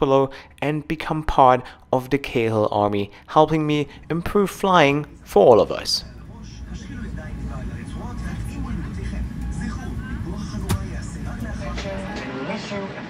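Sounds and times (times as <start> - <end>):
faint music: 3.4 - 13.0
aircraft cabin low rumble: 3.6 - 12.2.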